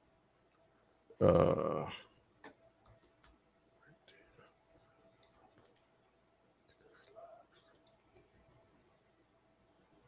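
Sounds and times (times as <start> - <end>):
laptop keys typing: 2.3 - 4.3, 5.1 - 6.0, 6.8 - 8.4.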